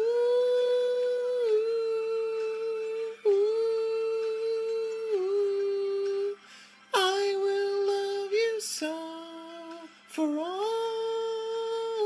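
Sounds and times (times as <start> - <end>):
man singing long held notes: 0.0 - 12.0.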